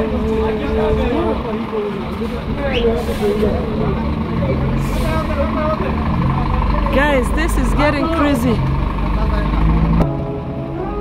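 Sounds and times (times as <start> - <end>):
faint voices: 0.0 - 9.9
diesel engines idling: 0.0 - 11.0.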